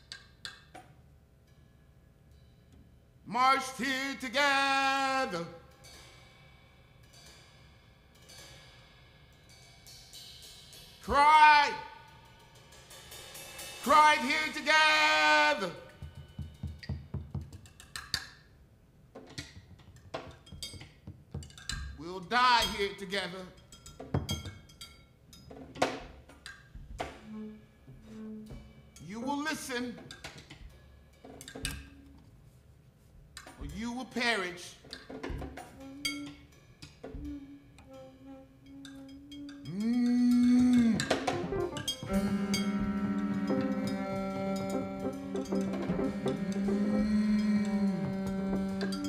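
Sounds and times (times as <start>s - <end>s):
percussion strikes: 4.9s - 18.3s, 19.2s - 32.4s, 33.4s - 49.0s
cymbal strokes: 5.6s - 11.2s, 11.8s - 14.8s, 35.8s - 49.0s
alto saxophone: 27.2s - 28.7s, 40.7s - 49.0s
bowed double bass: 40.7s - 49.0s
low drum thuds: 41.0s - 49.0s.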